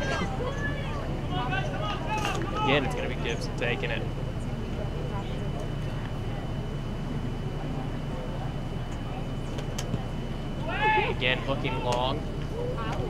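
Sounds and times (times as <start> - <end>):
distant players shouting: 0.0 - 3.5, 10.1 - 13.0
steady low rumble: 0.0 - 13.0.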